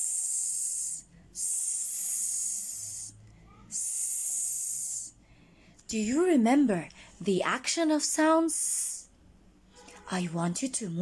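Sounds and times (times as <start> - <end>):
woman making hissing s sounds: 0.0 - 5.2.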